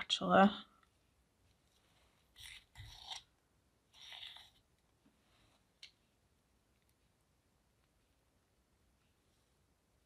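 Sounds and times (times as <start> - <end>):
plastic spatula scraping paste: 1.7 - 4.8.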